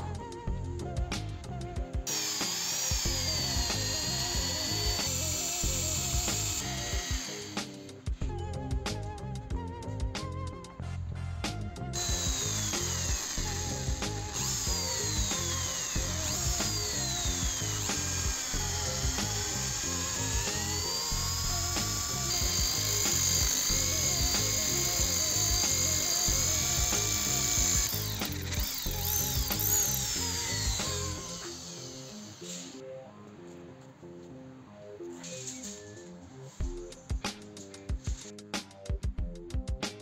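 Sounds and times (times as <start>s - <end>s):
background music: 0.0s - 40.0s
power drill boring into steel: 2.1s - 8.1s, 12.0s - 32.8s.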